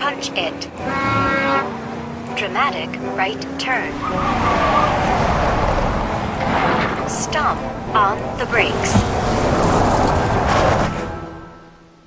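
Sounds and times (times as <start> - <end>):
car tyres skidding: 3.9 - 11.7.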